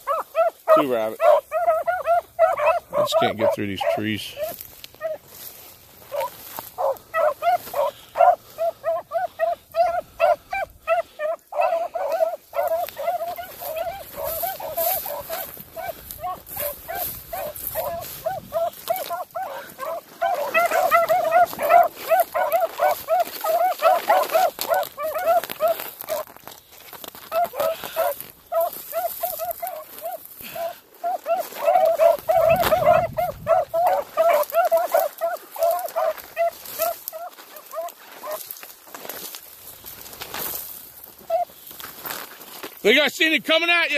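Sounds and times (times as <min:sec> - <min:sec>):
hounds baying: 0:00.0 - 0:43.0.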